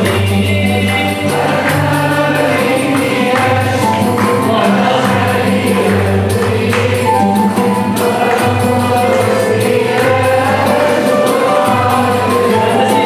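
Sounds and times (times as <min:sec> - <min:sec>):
piano: 0:00.0 - 0:13.0
tambourine steady beat: 0:00.0 - 0:13.0
voices singing together: 0:00.0 - 0:13.0.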